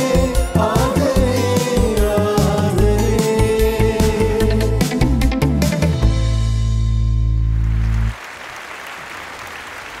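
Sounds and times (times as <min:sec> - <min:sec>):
audience applauding: 0:07.6 - 0:10.0.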